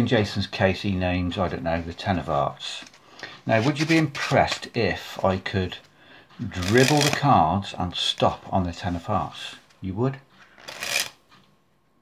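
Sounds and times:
playing cards riffling: 6.5s - 7.3s, 10.4s - 11.3s.

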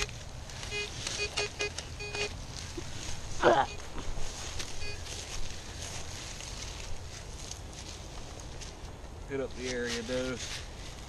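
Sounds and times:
metal detector short beeps: 0.7s - 2.3s, 4.8s - 5.1s.

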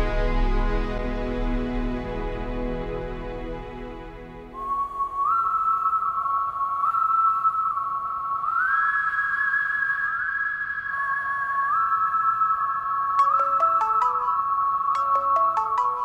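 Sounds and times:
soft synth pad: 0.0s - 8.8s
whistle-like synth melody: 4.5s - 16.0s.

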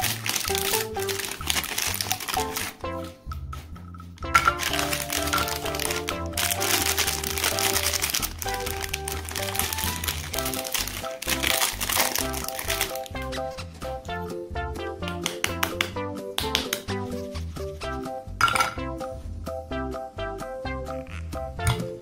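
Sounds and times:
plastic wrapper crinkling: 0.0s - 2.8s, 4.5s - 13.2s
background music: 0.0s - 22.0s.

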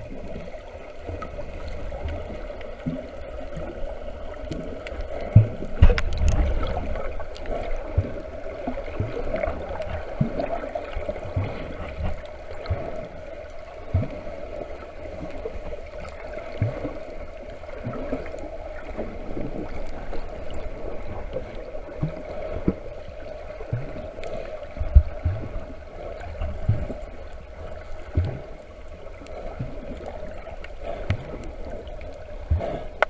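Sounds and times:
low underwater thumps: 4.5s - 7.1s, 26.4s - 27.2s.

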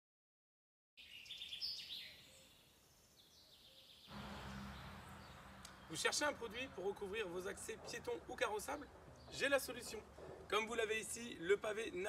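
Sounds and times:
birds chirping: 1.0s - 11.5s.

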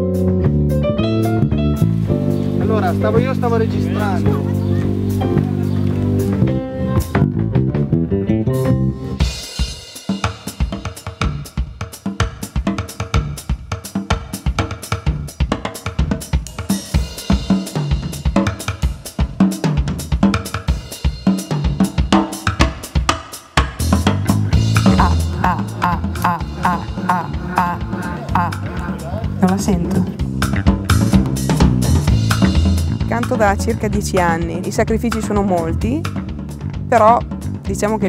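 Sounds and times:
low pitched notes: 0.0s - 9.3s, 23.8s - 38.0s
fast drum kit playing: 0.0s - 38.0s.

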